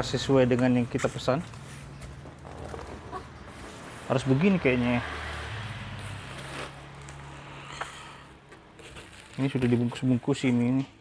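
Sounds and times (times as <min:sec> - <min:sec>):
cardboard and plastic rustling: 0:00.4 - 0:04.3, 0:08.5 - 0:10.8.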